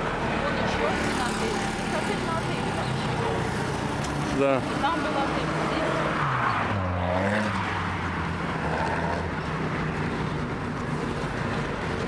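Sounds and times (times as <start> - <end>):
steady traffic noise: 0.0 - 12.0.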